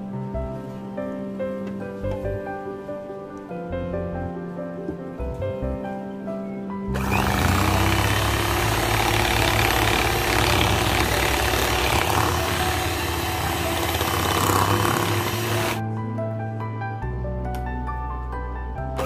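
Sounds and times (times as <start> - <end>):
electric hand mixer whisking: 7.0 - 15.8.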